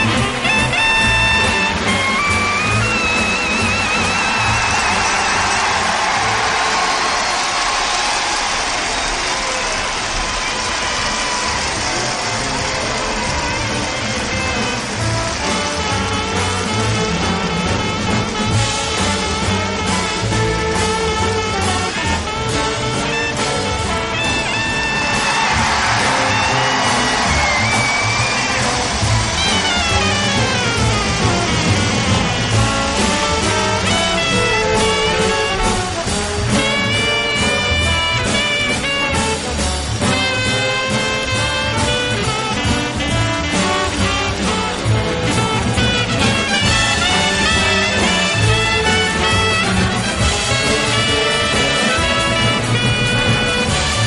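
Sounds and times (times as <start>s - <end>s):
jazz band playing: 0.0s - 54.0s.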